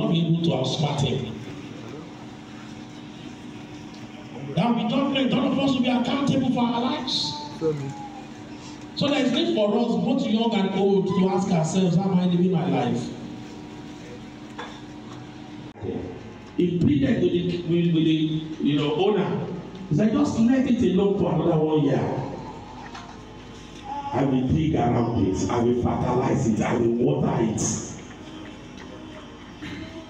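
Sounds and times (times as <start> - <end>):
faint steady hum: 0.0 - 30.0.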